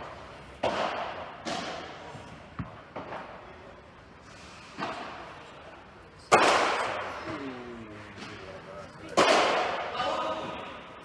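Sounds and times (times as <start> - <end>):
ball struck with sharp crack: 0.0 - 3.3, 6.3 - 7.1, 9.2 - 10.0.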